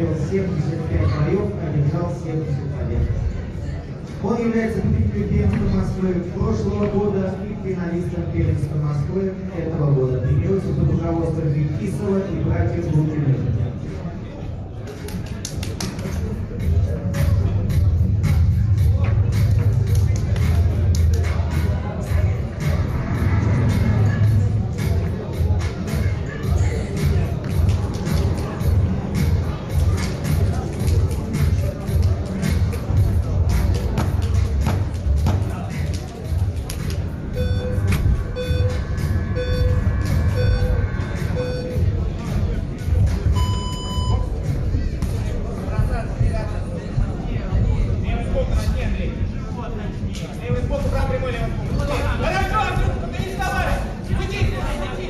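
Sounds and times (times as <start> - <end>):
low rumble of hall noise: 0.0 - 55.0
murmur of voices: 0.0 - 55.0
short timer beeps: 37.4 - 37.8, 39.4 - 40.8, 43.4 - 44.2
longer higher beep: 37.4 - 38.8, 39.4 - 40.8, 41.4 - 41.8, 43.4 - 44.3.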